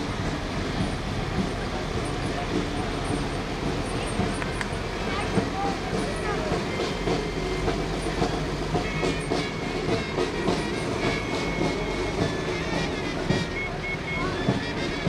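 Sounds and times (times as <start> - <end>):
crowd voices: 0.0 - 15.0
diesel engines rumbling: 0.0 - 15.0.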